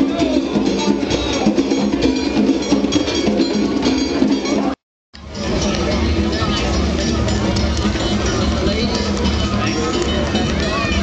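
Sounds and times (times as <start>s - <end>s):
hand drums playing rhythm: 0.0s - 11.0s
pitched instrument: 0.0s - 11.0s.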